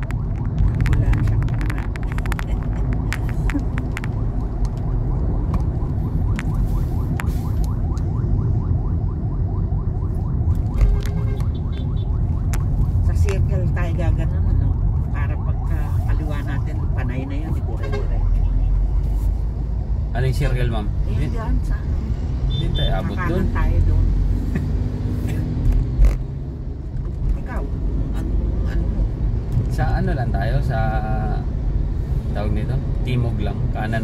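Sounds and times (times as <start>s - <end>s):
car cabin road rumble: 0.0s - 34.0s.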